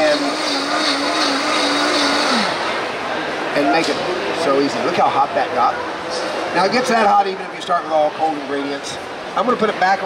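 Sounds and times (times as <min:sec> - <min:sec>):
blender motor winding down: 0:00.0 - 0:02.8.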